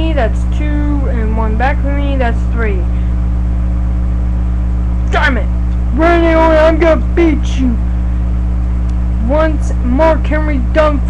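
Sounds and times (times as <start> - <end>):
low electrical hum with hiss: 0.0 - 11.0.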